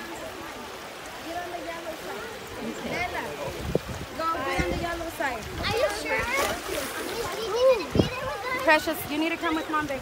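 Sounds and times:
people's voices: 0.0 - 10.0
water splashing from swimmers: 0.0 - 10.0.

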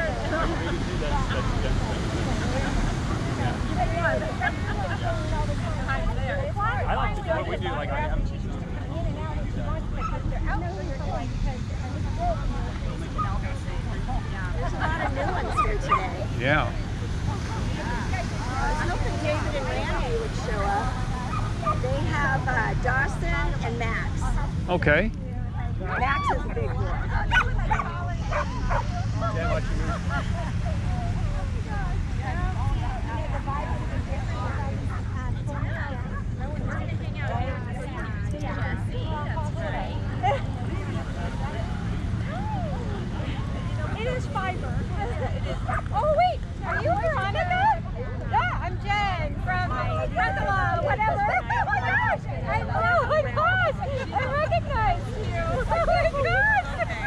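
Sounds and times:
people chattering: 0.0 - 57.0
steady low rumble: 0.0 - 57.0.

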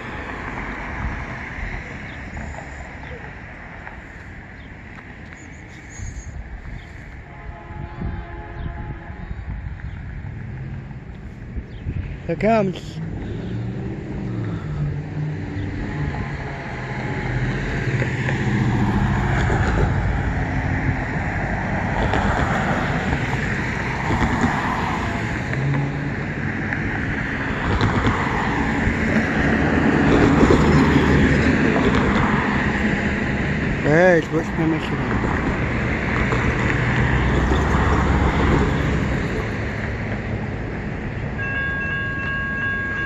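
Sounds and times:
cars driving past: 0.0 - 43.0.

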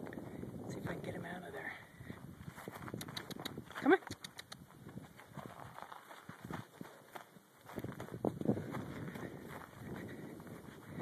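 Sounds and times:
horse hooves on dry dirt: 0.0 - 11.0.

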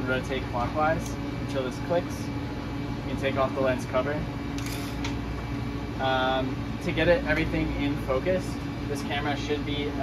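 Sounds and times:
fan humming: 0.0 - 10.0.

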